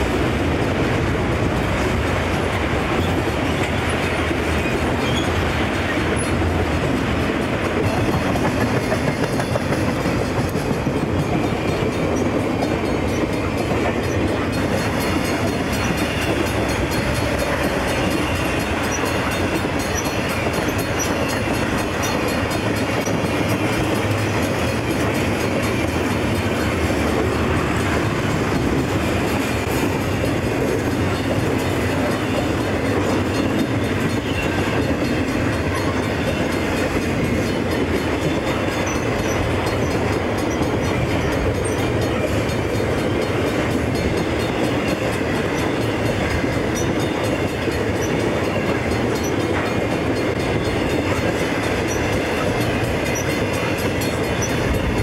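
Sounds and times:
steel wheels rumbling on rail: 0:00.0 - 0:55.0
wheels clacking over rail joints: 0:00.0 - 0:55.0.

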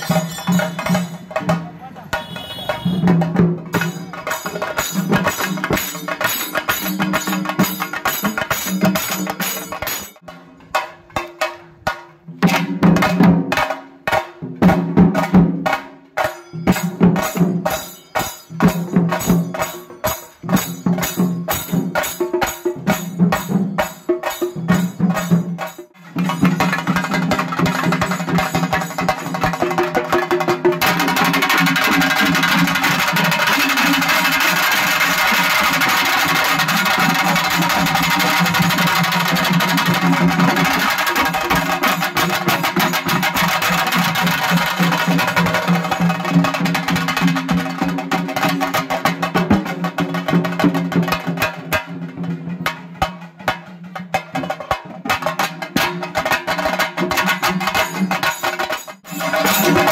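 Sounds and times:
drums beaten fast with sticks: 0:00.0 - 0:59.9.

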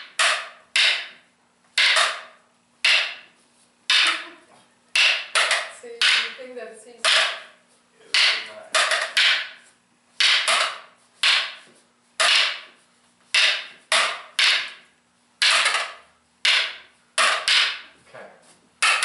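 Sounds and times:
wooden sticks clacking: 0:00.0 - 0:06.4, 0:07.0 - 0:17.9, 0:18.8 - 0:19.0.

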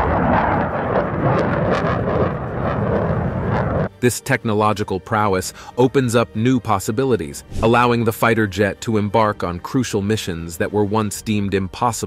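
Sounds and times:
fighter jet roar: 0:00.0 - 0:03.9.

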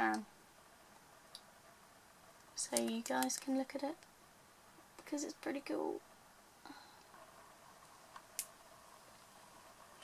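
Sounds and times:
small clicks: 0:02.4 - 0:04.1.

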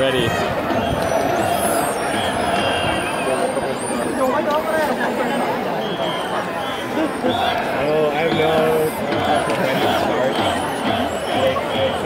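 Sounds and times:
crowd babble: 0:00.0 - 0:12.0
high whistling tones: 0:00.7 - 0:04.4, 0:05.3 - 0:07.6.

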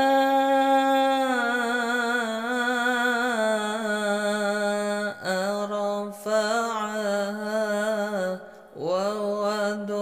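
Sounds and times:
person chanting melodically: 0:00.0 - 0:10.0
breath: 0:08.4 - 0:08.8.

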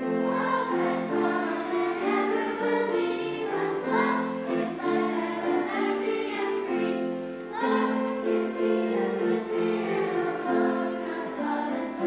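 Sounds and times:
children's choir singing: 0:00.0 - 0:12.0.

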